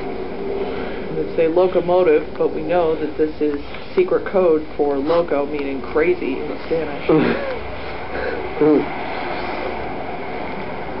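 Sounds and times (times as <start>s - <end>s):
low rumble and hiss: 0.0s - 11.0s.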